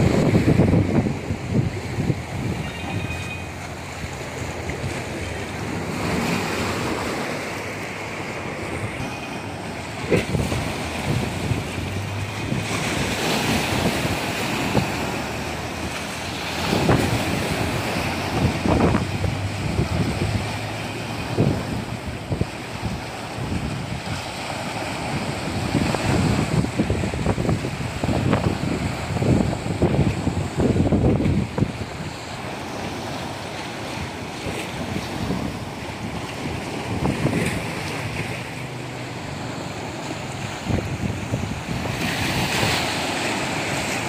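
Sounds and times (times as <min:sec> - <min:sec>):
wind buffeting the microphone: 0:00.0 - 0:03.0, 0:09.9 - 0:44.0
small waves washing on sand: 0:00.0 - 0:44.0
waves breaking around rocks: 0:00.0 - 0:44.0.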